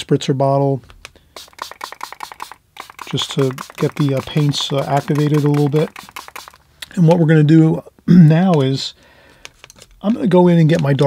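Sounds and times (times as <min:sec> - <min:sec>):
spray bottle spritzing: 0:01.3 - 0:06.6.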